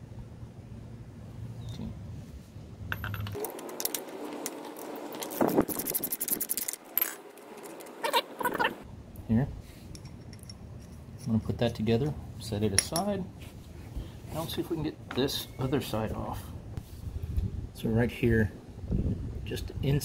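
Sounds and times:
steel hardware clinking and rattling: 0:02.9 - 0:08.2, 0:09.9 - 0:12.1.

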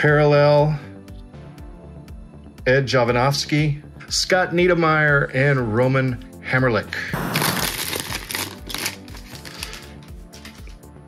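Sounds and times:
soft background music: 0:00.0 - 0:11.0
foil wrapper crinkling: 0:07.2 - 0:10.8.

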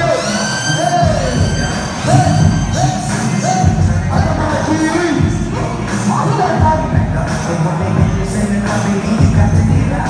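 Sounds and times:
live music through a pa: 0:00.0 - 0:10.0
man calling into a microphone: 0:00.0 - 0:10.0.

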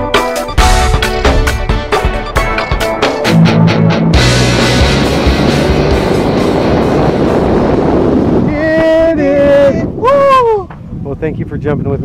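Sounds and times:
wind rushing over microphone: 0:04.1 - 0:12.0.

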